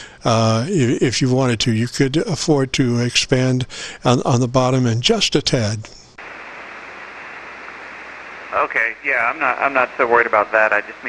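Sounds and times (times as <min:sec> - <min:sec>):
radio static hiss: 0:05.6 - 0:11.0.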